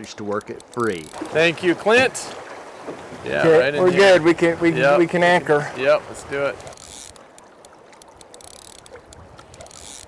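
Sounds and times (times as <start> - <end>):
fishing reel ratchet ticking: 0.5 - 1.2, 6.6 - 10.0
river water rushing: 0.8 - 10.0.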